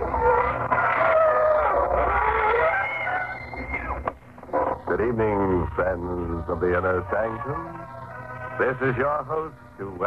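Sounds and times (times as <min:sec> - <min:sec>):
creaking door hinge squeak: 0:00.0 - 0:05.1.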